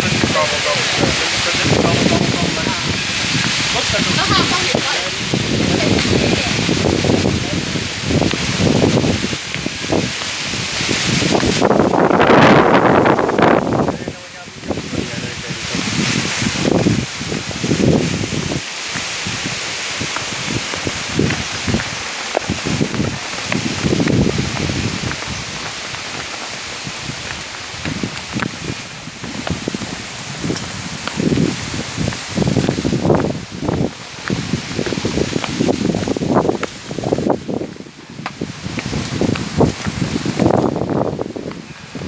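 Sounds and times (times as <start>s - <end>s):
wind noise on microphone: 0.0s - 42.0s.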